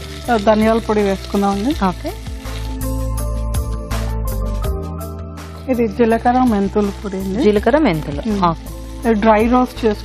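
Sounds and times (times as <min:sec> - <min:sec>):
oil crackling: 0:00.0 - 0:04.1, 0:06.2 - 0:10.0
vegetables sizzling in oil: 0:00.0 - 0:04.6, 0:05.8 - 0:10.0
background music: 0:00.0 - 0:10.0.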